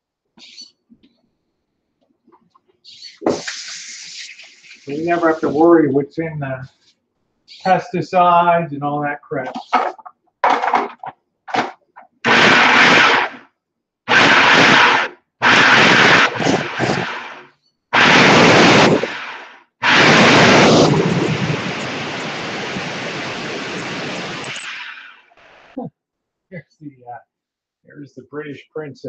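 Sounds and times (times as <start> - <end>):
food processor chopping: 12.3 - 13.4.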